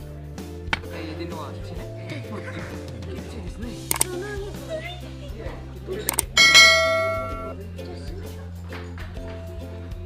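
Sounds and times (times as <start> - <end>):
quick clicks: 3.9 - 4.1, 6.1 - 6.4
bright bell ding: 6.1 - 7.6.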